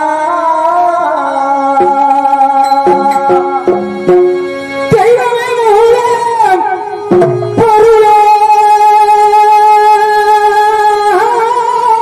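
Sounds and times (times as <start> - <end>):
man singing a long high note: 0.0 - 12.0.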